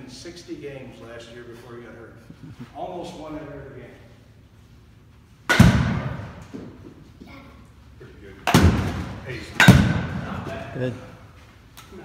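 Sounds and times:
bat cracking ball: 5.5 - 6.7, 8.5 - 10.4.

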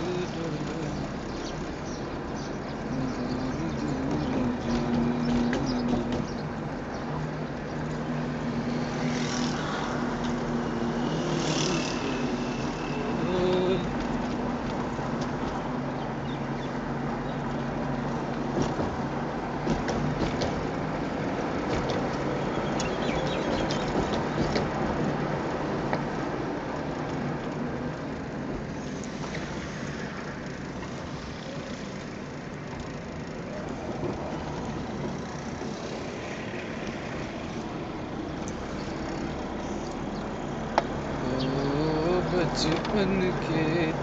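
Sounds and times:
car engine and road noise: 0.0 - 44.0.

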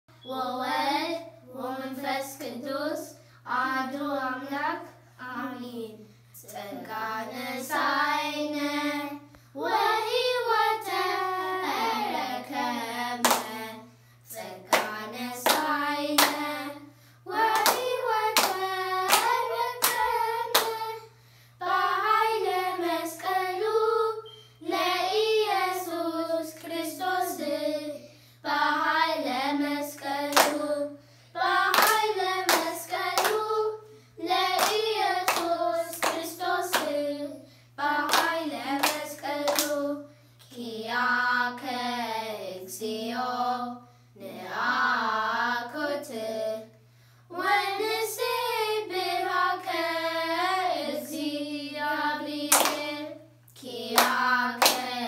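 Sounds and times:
children singing a hymn: 6.6 - 46.7, 47.3 - 55.0
hands clapping in rhythm: 13.2 - 13.6, 14.7 - 16.5, 17.4 - 20.9, 30.2 - 30.7, 31.6 - 33.5, 34.6 - 37.0, 38.1 - 39.8, 52.5 - 53.0, 54.0 - 55.0.

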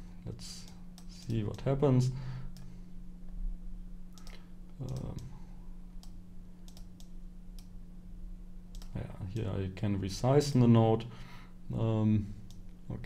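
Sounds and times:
computer mouse clicking: 4.1 - 5.3, 6.0 - 7.7, 8.7 - 9.5.

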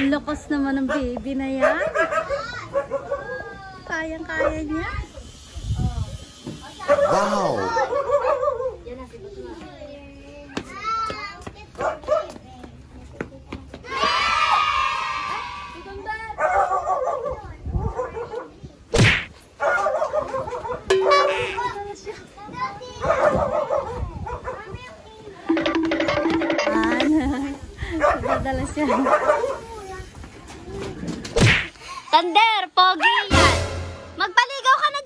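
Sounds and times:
small child's voice: 2.3 - 4.0, 9.5 - 14.4, 21.3 - 25.5
sharp thud: 18.9 - 19.4, 31.4 - 31.7.

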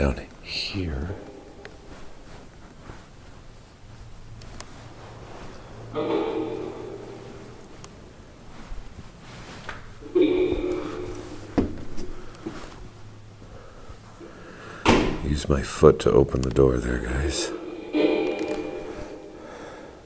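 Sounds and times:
man's voice: 0.0 - 1.4, 15.2 - 17.7.

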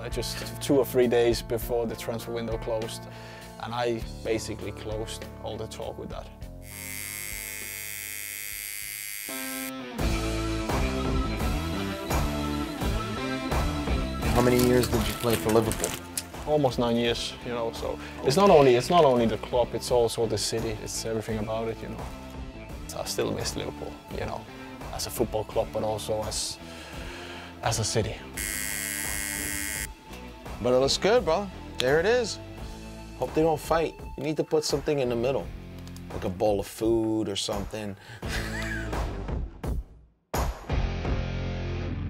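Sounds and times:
soft music with held chords: 0.0 - 37.0
tattoo machine buzzing: 6.6 - 9.8, 28.4 - 29.9.

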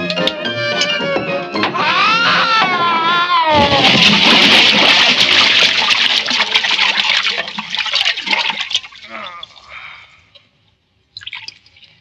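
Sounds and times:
big splash into pond: 3.6 - 6.8
sloshing water: 3.6 - 9.7
water drips: 4.0 - 9.7, 10.3 - 12.0.

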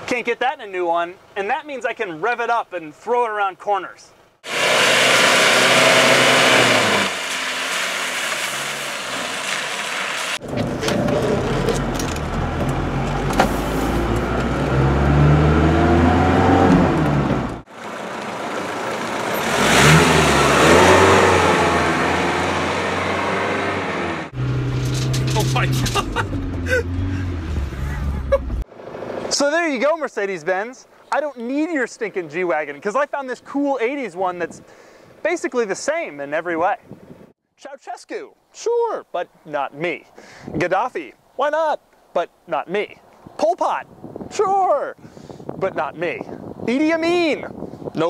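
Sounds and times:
diesel engine revving: 4.4 - 29.3.

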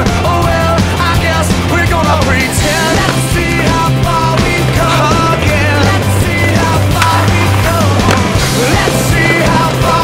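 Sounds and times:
rock music: 0.0 - 10.0
skateboard grinding on ledge: 0.5 - 10.0.

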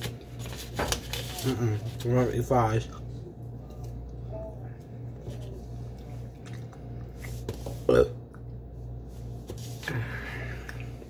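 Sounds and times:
steady low hum: 0.0 - 11.0
loud burp: 7.9 - 8.2.

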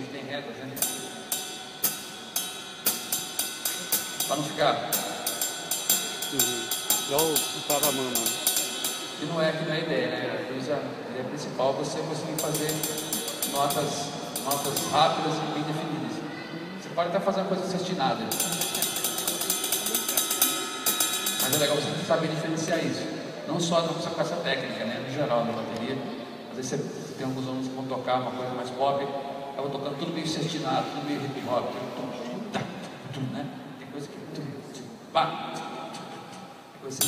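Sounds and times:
drumstick strokes on cymbal: 0.8 - 9.7, 12.0 - 16.2, 18.2 - 24.0.

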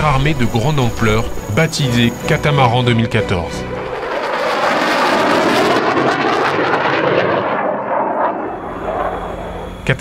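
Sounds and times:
aircraft engine rushing: 0.0 - 10.0.

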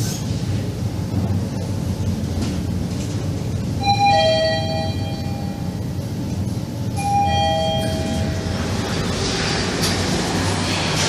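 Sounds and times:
elevator running hum: 0.0 - 11.0
elevator two-note chime: 3.8 - 6.0, 6.9 - 8.7.

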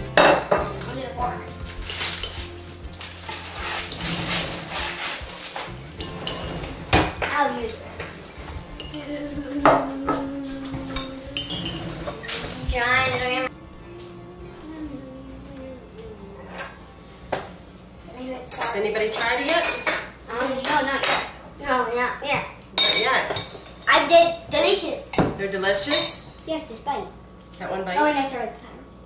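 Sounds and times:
parchment paper crinkling: 1.5 - 5.9
metal spatula scraping baking sheet: 1.6 - 8.1.

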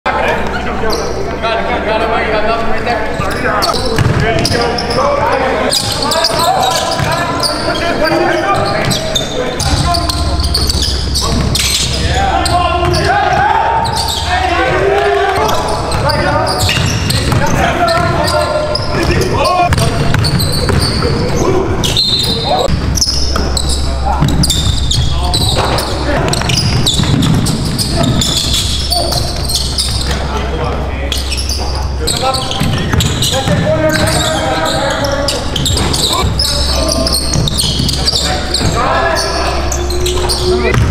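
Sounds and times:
voices: 0.1 - 40.9
basketball bouncing on wooden floor: 4.0 - 4.6, 15.4 - 18.4, 19.0 - 21.1, 24.2 - 30.1, 32.5 - 34.3, 40.1 - 40.9.

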